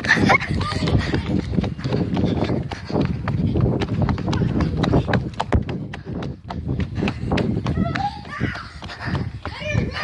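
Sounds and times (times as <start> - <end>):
running footsteps: 0.0 - 10.0.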